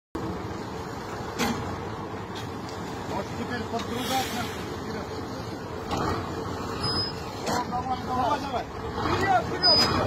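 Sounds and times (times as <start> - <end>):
loader engine running: 0.2 - 10.0.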